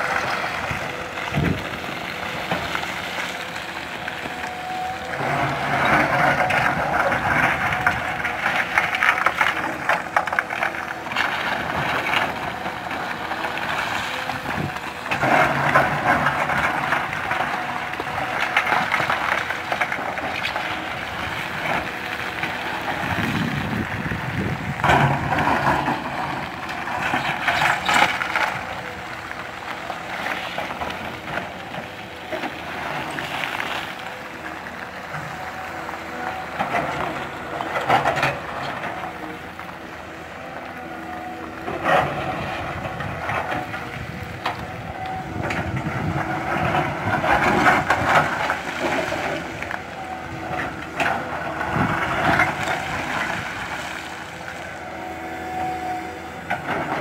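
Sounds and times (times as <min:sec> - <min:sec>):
excavator diesel engine running: 0:00.0 - 0:57.0
steel bucket scraping rock: 0:05.2 - 0:28.7.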